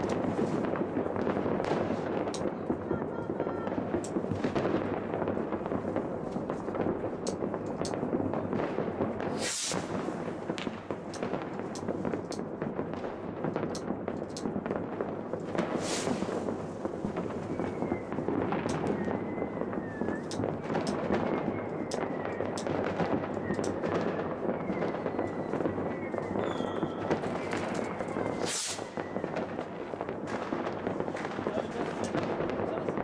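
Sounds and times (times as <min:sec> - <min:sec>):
fireworks crackling and banging: 0:00.0 - 0:33.0.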